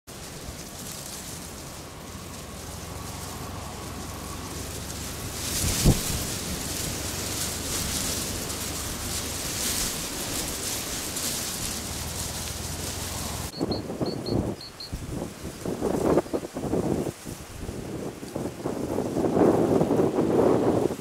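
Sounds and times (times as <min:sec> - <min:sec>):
wind on microphone: 0:01.8 - 0:21.0.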